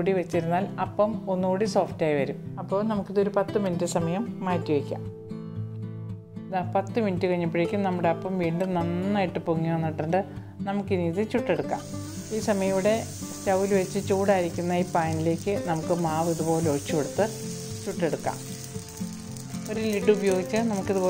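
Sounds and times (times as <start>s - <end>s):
background music: 0.0s - 21.0s
batter sizzling on griddle: 11.8s - 21.0s.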